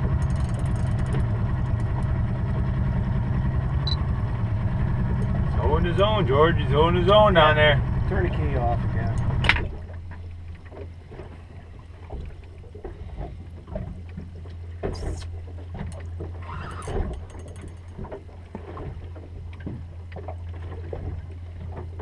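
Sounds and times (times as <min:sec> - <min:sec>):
water slapping against boat hull: 0:00.0 - 0:02.2, 0:08.2 - 0:22.0
steady low hum: 0:00.0 - 0:22.0.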